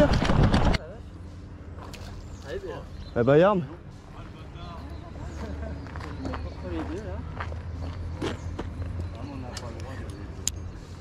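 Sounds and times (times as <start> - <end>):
indistinct voices talking: 0.8 - 11.0.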